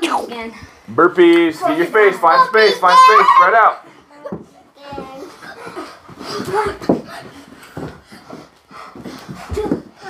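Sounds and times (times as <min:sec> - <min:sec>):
children panting: 0:01.7 - 0:10.0
thumps on carpeted floor: 0:04.3 - 0:10.0.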